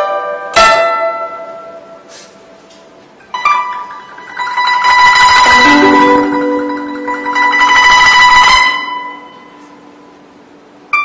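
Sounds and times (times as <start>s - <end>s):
guzheng note plucked: 0.0s - 2.1s, 3.2s - 10.2s
guzheng strings ringing: 0.0s - 2.1s, 3.2s - 11.0s.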